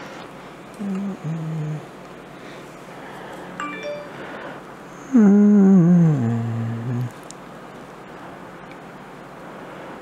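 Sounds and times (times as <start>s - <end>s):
man humming: 0.8s - 1.9s, 5.0s - 7.2s.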